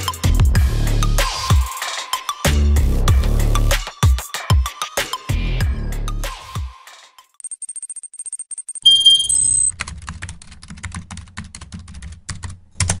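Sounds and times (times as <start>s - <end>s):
high electronic pips: 7.4s - 9.7s
bright ding: 8.8s - 9.7s.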